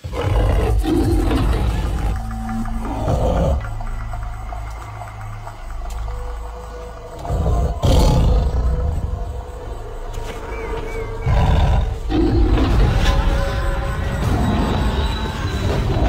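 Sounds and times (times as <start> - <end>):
tiger roaring: 0.0 - 3.8, 7.2 - 9.4, 11.2 - 13.4
dramatic music: 0.0 - 16.0.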